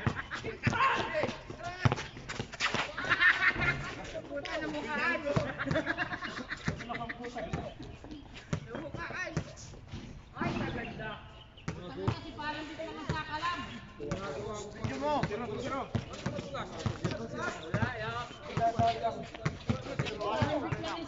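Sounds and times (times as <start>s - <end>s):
basketball bouncing on a court: 0.0s - 2.5s, 14.1s - 21.0s
players calling out: 0.0s - 9.7s, 10.4s - 21.0s.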